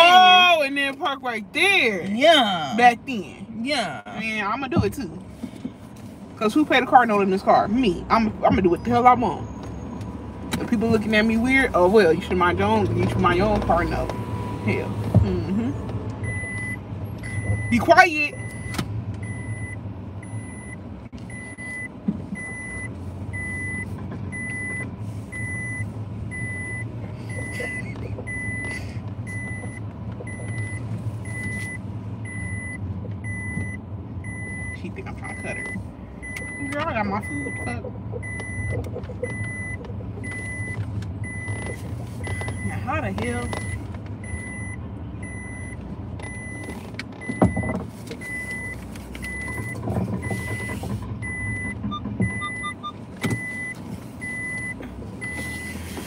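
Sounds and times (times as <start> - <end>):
car engine hum: 0.0 - 56.0
car warning chime beeping: 16.2 - 56.0.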